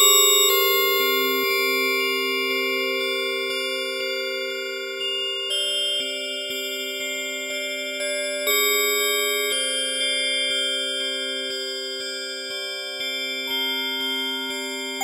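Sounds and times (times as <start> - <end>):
bell-like synthesizer chords: 0.0 - 15.0.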